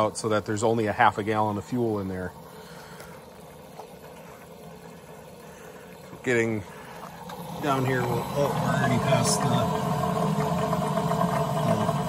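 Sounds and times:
electric fuel pump running: 0:00.0 - 0:12.0
liquid flow: 0:00.0 - 0:12.0.

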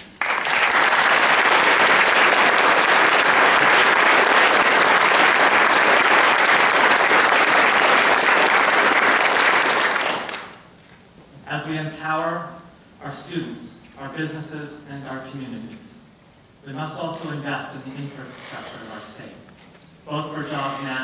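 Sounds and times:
audience applauding: 0:00.0 - 0:10.6.

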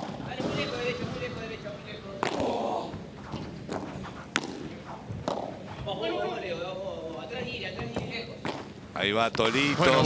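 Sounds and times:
ball bouncing on court: 0:02.2 - 0:05.6
padel ball hit by rackets: 0:03.3 - 0:05.6.

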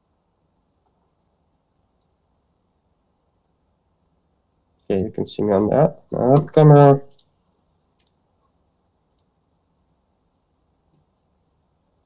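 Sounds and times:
computer mouse clicks: 0:08.0 - 0:08.2, 0:09.0 - 0:09.3.

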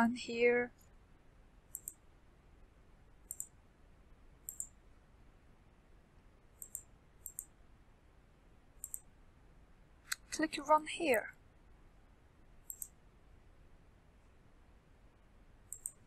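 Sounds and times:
computer mouse clicks: 0:01.7 - 0:02.0, 0:03.2 - 0:03.6, 0:04.4 - 0:04.8, 0:06.6 - 0:07.5, 0:08.8 - 0:09.1, 0:12.6 - 0:13.0, 0:15.7 - 0:16.0.

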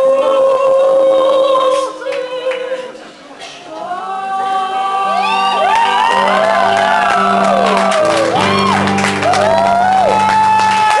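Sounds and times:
audience whooping and cheering: 0:05.0 - 0:11.0
live band holding a chord: 0:05.0 - 0:11.0.

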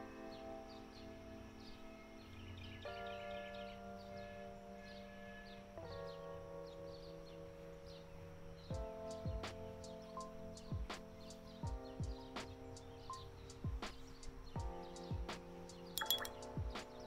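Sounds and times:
small birds chirping: 0:00.0 - 0:17.0
soft music of held chords: 0:00.0 - 0:17.0.

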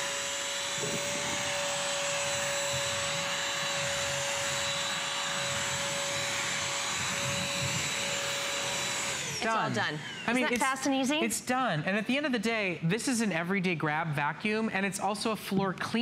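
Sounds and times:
floor cleaner whining: 0:00.0 - 0:11.0.

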